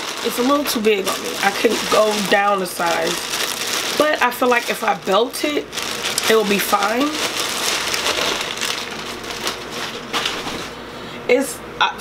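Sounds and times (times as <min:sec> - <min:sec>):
plastic bag crinkling: 0:00.0 - 0:10.8.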